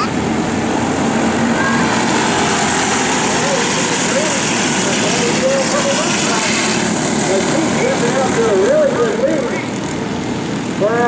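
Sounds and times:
kart engines droning: 0.0 - 11.0.

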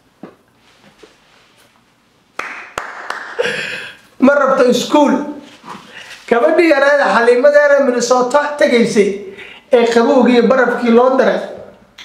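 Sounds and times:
hand claps: 2.4 - 3.5
man laughing breathily: 3.4 - 4.0.

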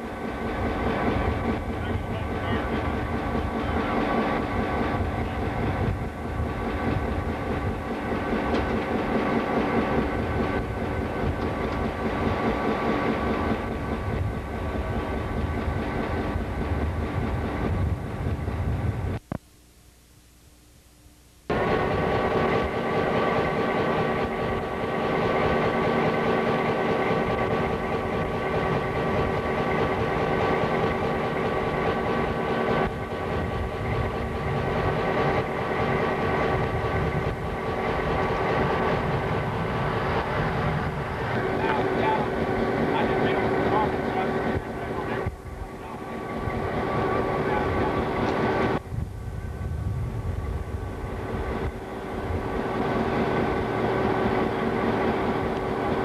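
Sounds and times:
diesel locomotive idling: 0.0 - 19.2, 21.5 - 56.0
constant whine: 0.0 - 56.0.

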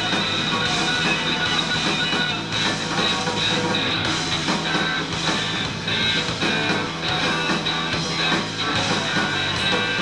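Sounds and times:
bass guitar: 0.0 - 10.0
drums: 0.0 - 10.0
electric guitar: 0.0 - 10.0.

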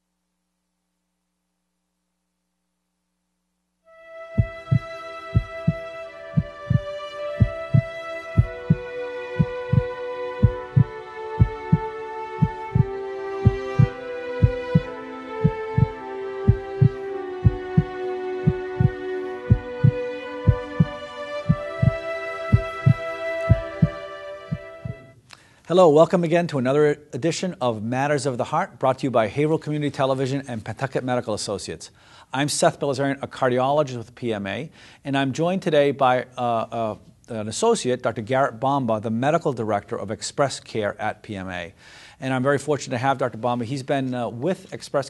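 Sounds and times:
held slowly changing chords: 3.8 - 25.4
heartbeat thump: 4.4 - 25.1.

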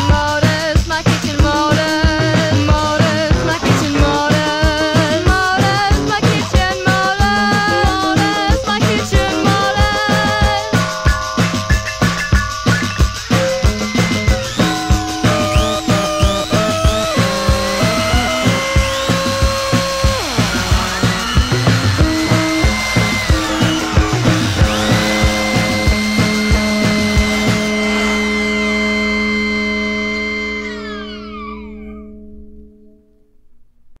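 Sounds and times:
electronic beat: 0.0 - 30.0
synthesizer tones: 2.7 - 32.9
held synth chord sliding down: 7.3 - 33.2.

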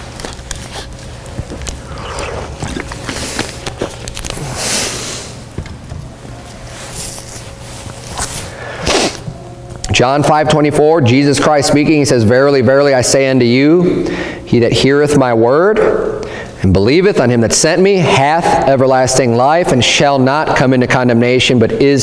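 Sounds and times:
low electrical hum: 0.0 - 22.0.

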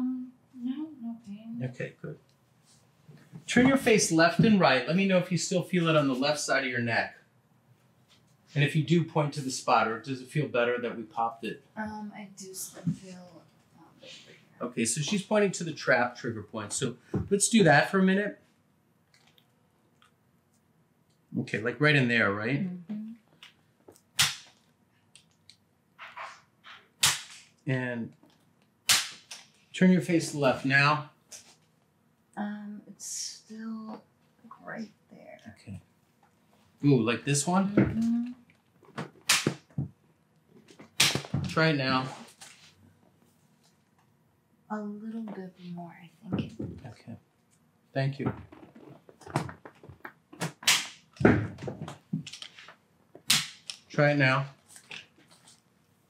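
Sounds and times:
sharp joint snaps: 24.0 - 27.6, 28.8 - 29.5, 39.2 - 39.7, 50.4 - 51.2, 53.3 - 53.9.

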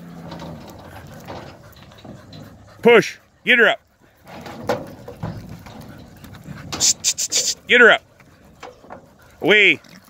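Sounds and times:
hooves scuffling in dirt: 0.0 - 10.0.

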